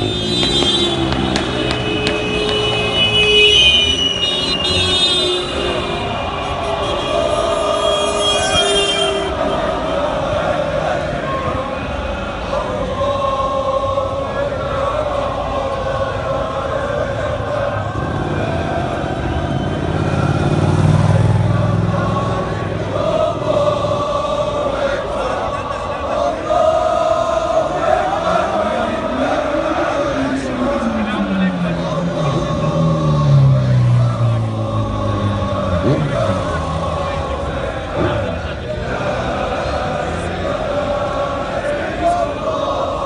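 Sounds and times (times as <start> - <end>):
crowd chanting: 0.0 - 43.0
street traffic noise: 0.0 - 43.0
car engine running: 28.4 - 41.4.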